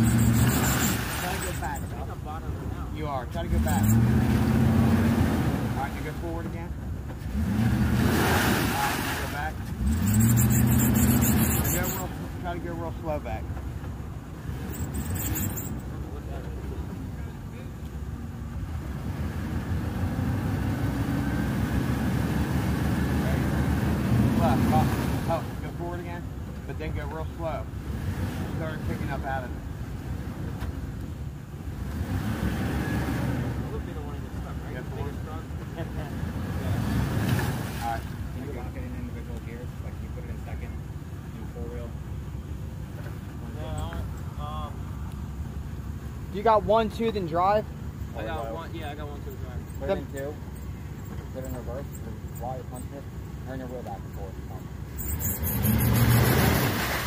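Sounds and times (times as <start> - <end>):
truck engine revving under load: 0.0 - 2.1, 3.3 - 6.0, 7.1 - 13.0, 14.3 - 16.8, 18.6 - 25.5, 27.7 - 29.2, 31.7 - 38.9, 47.8 - 57.0.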